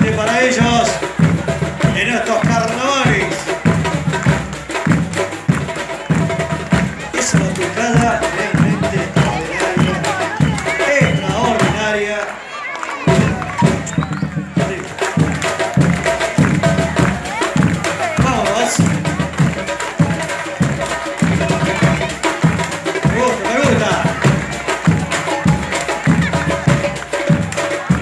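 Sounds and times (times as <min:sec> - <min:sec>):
low drum beat: 0:00.0 - 0:12.3, 0:13.0 - 0:28.0
voices over music: 0:00.0 - 0:28.0.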